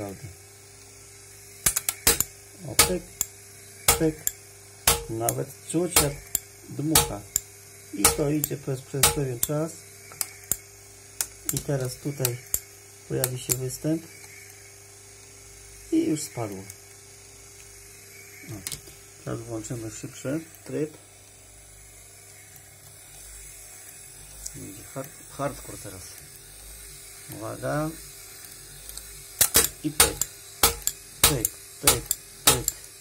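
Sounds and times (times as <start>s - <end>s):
sharp mechanical clicks: 1.6s - 13.7s, 28.4s - 32.9s.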